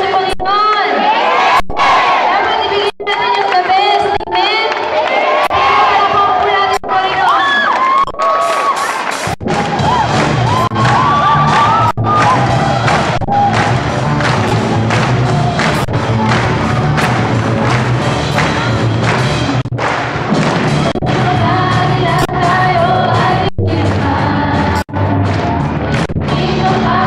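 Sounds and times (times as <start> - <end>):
drum kit beat: 8.3 - 27.0
electric and bass guitars: 9.4 - 27.0
woman singing into a microphone: 21.1 - 24.9.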